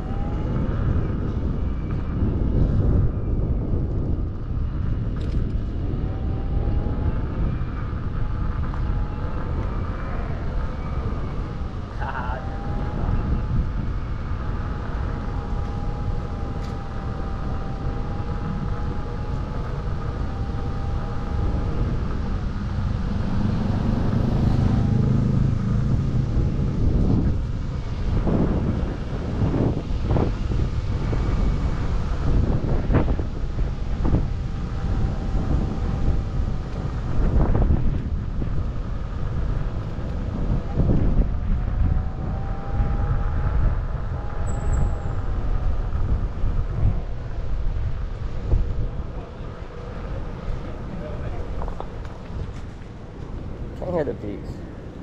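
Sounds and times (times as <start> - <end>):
faint motor whine: 0.0 - 55.0
wind buffeting microphone: 0.0 - 55.0.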